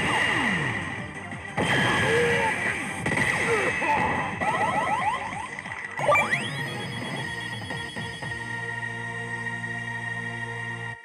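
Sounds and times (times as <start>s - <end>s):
electronic hit effects: 1.6s - 8.4s
rising electronic chirps: 4.4s - 8.6s.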